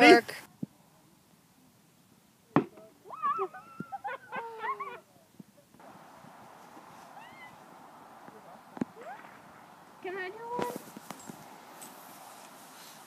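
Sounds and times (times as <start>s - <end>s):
steady soft hiss: 0.0s - 13.0s
girls shrieking and squealing: 3.1s - 5.0s, 7.1s - 7.6s, 9.0s - 9.4s.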